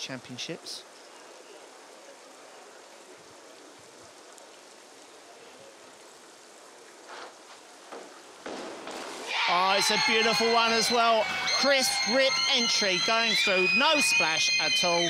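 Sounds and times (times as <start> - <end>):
faint outdoor hiss: 0.0 - 15.0
person shouting yeah: 9.3 - 12.2.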